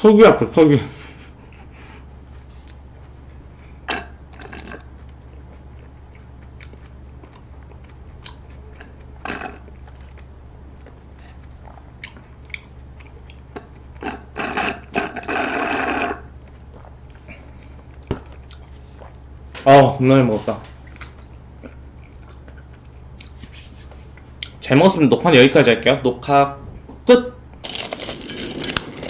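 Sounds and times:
low steady hum: 0:00.0 - 0:29.0
swallowing: 0:03.1 - 0:10.3, 0:11.1 - 0:19.2
sucking through a straw: 0:14.0 - 0:17.0.

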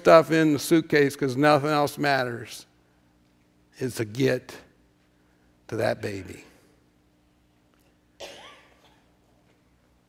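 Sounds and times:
person coughing: 0:08.2 - 0:09.2.

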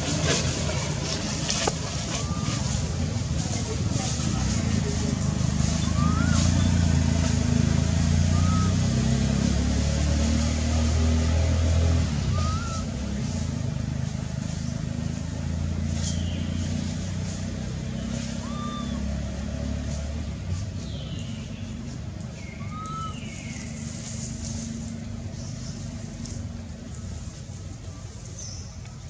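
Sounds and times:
vehicle engine running: 0:00.0 - 0:29.0.

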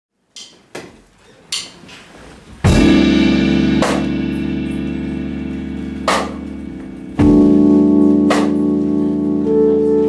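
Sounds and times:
cymbal crash: 0:02.7 - 0:07.6
band sustained chord: 0:02.7 - 0:10.0.

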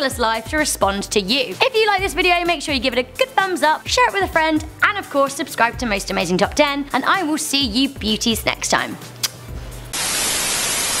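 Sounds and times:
white noise hiss: 0:10.0 - 0:11.0.

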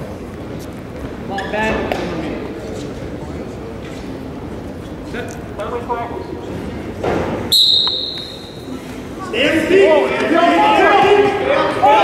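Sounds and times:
crowd noise in gym: 0:00.0 - 0:12.0
referee whistle blast: 0:07.5 - 0:08.7.

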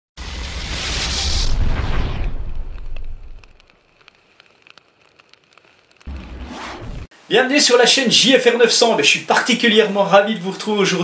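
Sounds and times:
fire crackling: 0:00.2 - 0:10.0.

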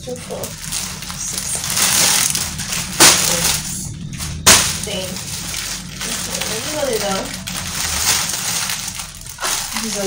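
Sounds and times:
plastic bag crinkling: 0:00.0 - 0:10.0
sharp plastic crackles: 0:00.0 - 0:10.0.

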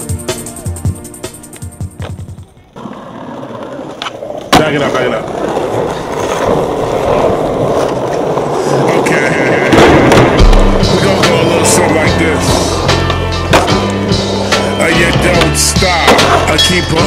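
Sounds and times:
skateboard wheels rolling on paving: 0:01.5 - 0:17.0
skateboard pops and landing clacks: 0:03.8 - 0:05.1, 0:09.7 - 0:10.8, 0:12.9 - 0:14.0, 0:15.4 - 0:16.5
hip-hop track with deep bass: 0:09.7 - 0:17.0.

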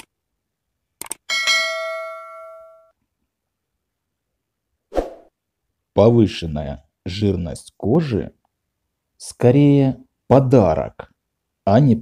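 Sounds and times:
notification bell ding: 0:01.3 - 0:02.9.

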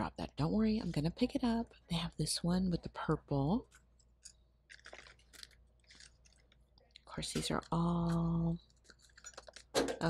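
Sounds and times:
plastic packages crinkling: 0:03.6 - 0:09.9.

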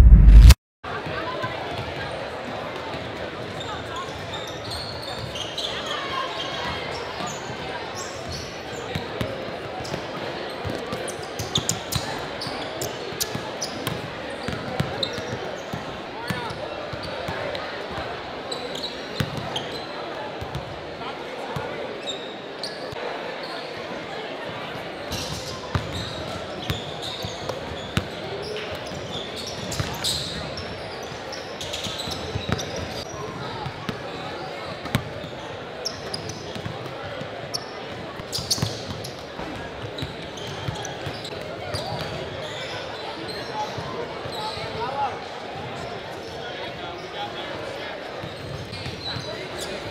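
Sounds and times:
murmur of voices: 0:00.9 - 0:49.9.

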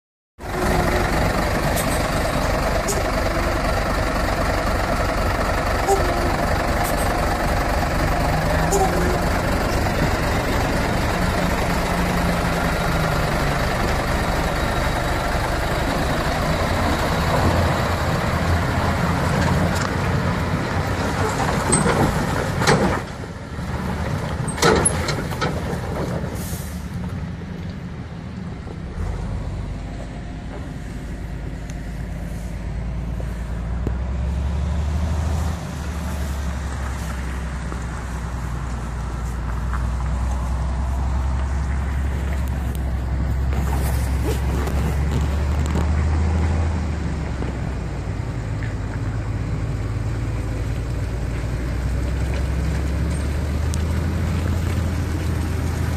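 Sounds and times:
diesel truck engine under load: 0:00.4 - 0:55.9.

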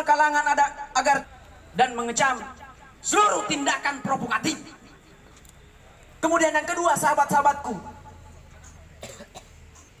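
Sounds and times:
person coughing: 0:09.0 - 0:09.6.

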